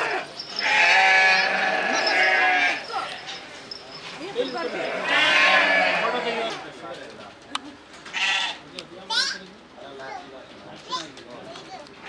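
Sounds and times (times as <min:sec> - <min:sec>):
young goat bleating: 0:00.0 - 0:03.2, 0:04.7 - 0:06.5, 0:08.1 - 0:08.6.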